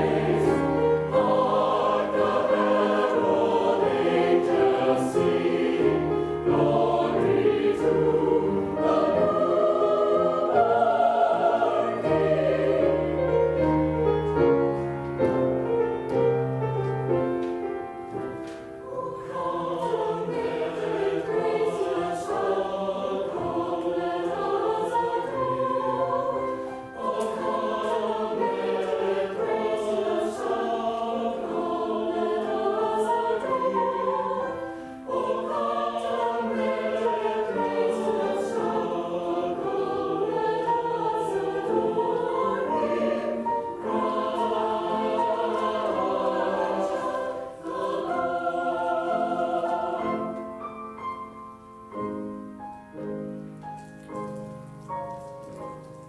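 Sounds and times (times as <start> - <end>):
mixed choir singing in harmony: 0.0 - 16.4, 18.2 - 53.4.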